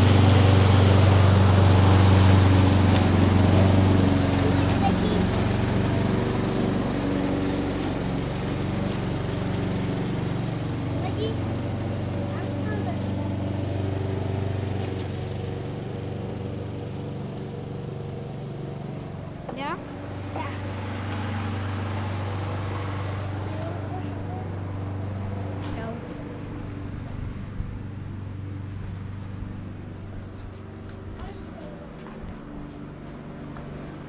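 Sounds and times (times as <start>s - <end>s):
lawn mower engine running: 0.0s - 34.0s.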